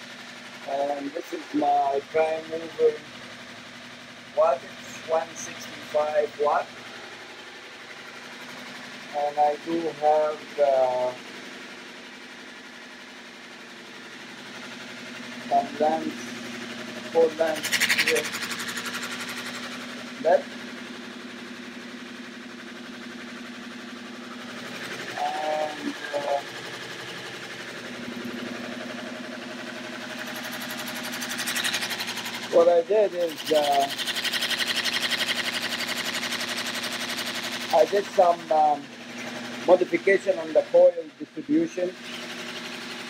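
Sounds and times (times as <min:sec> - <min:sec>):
electric motor humming: 0:00.0 - 0:43.0.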